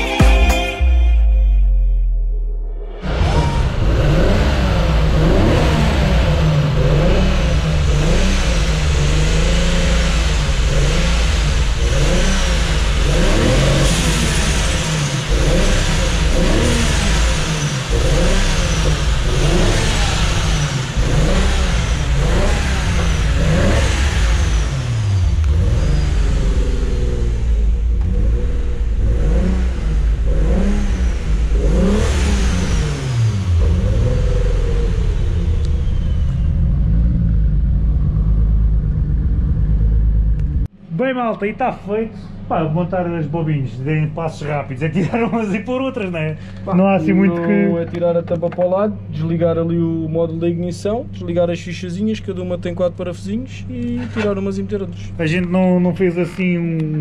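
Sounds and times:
car engine revving: 2.2s - 40.8s.

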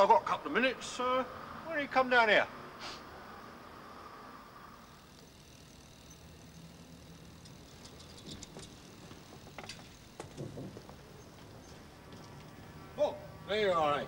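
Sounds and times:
faint outdoor background: 0.0s - 14.0s.

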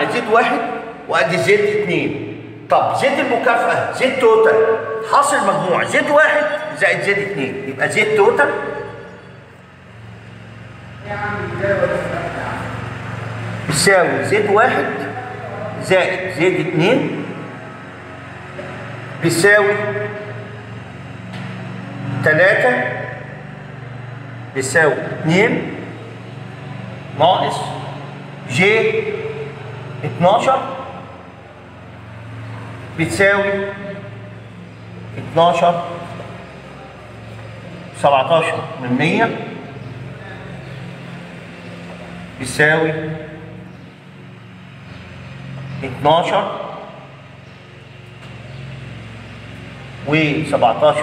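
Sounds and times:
low steady hum: 0.0s - 51.0s.

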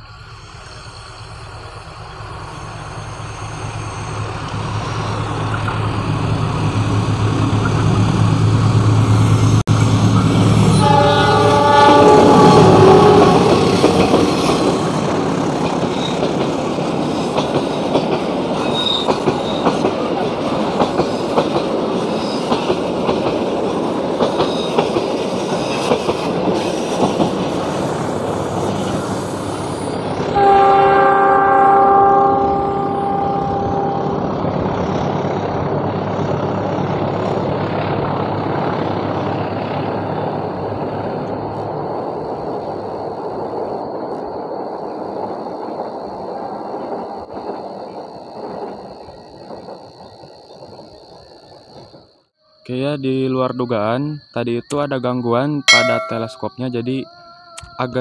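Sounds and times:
diesel locomotive engines running: 0.0s - 44.1s
locomotive horn: 10.6s - 14.0s, 30.3s - 34.6s
train wheels clicking over rail joints: 13.4s - 29.6s.

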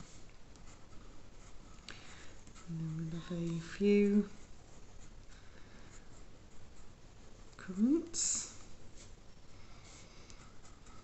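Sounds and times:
pencil scratching on paper: 0.0s - 8.1s, 9.8s - 11.0s.

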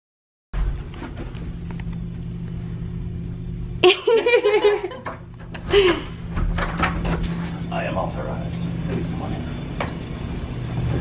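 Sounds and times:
low machinery hum: 0.6s - 11.0s.

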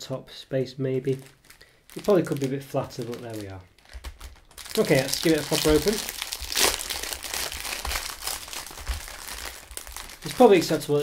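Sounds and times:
cellophane wrapper crinkling: 1.0s - 11.0s.

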